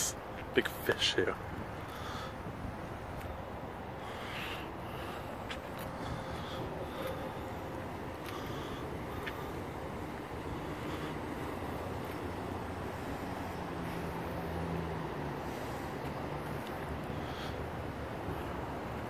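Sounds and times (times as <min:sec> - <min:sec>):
street traffic noise: 0:00.0 - 0:19.0
vehicle engine humming: 0:00.0 - 0:19.0.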